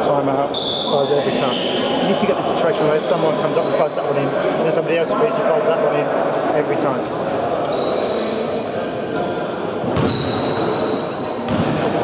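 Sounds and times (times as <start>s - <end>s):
murmur of voices: 0.0s - 12.0s
sneaker squeaks on court floor: 0.5s - 1.9s, 3.2s - 5.5s, 6.6s - 8.3s, 9.9s - 12.0s.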